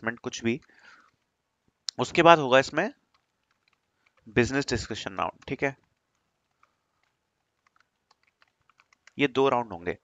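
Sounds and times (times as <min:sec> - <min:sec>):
faint keyboard typing: 0:00.0 - 0:10.0.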